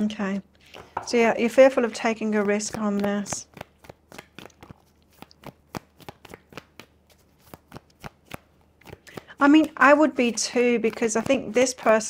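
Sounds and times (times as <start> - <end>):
cards being shuffled: 1.7 - 12.0.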